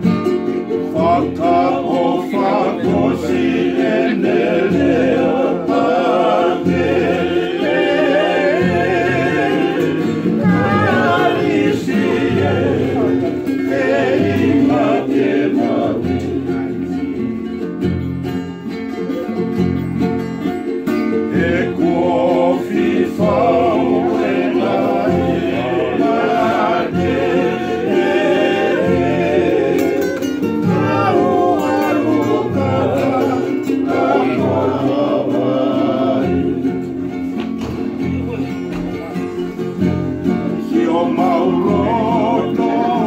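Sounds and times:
strummed acoustic guitars and ukuleles: 0:00.0 - 0:43.0
men singing in harmony: 0:00.7 - 0:17.3, 0:21.0 - 0:37.5, 0:39.8 - 0:43.0.

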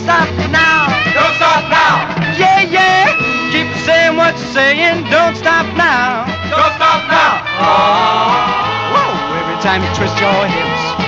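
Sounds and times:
rock and roll song by a band: 0:00.0 - 0:11.0.

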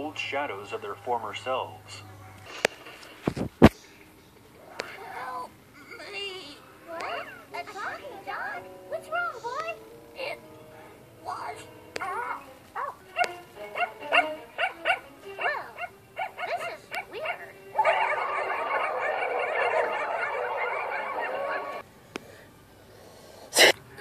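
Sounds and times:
cartoon dogs barking: 0:07.0 - 0:07.5, 0:12.0 - 0:21.8.

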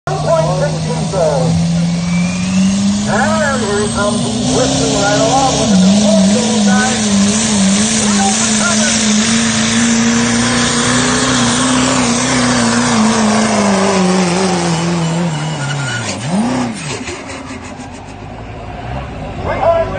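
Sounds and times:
diesel truck engine at full throttle: 0:00.0 - 0:19.9.

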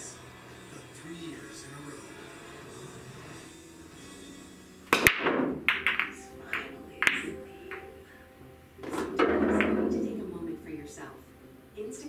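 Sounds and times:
pool break shot crack: 0:04.9 - 0:08.0, 0:08.8 - 0:10.5
pool balls clicking and knocking: 0:04.9 - 0:08.1, 0:08.8 - 0:10.7.

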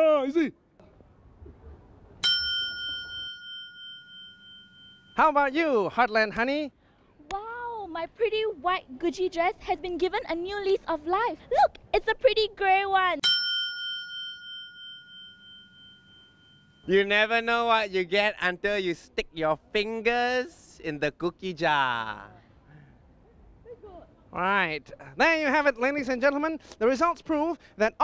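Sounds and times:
bell ding ringing: 0:02.2 - 0:05.4, 0:13.2 - 0:16.9.

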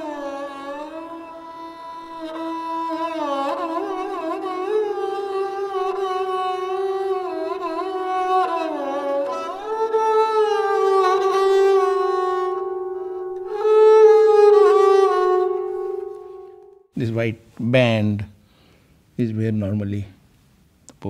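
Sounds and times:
bowed string melody: 0:00.0 - 0:17.2.

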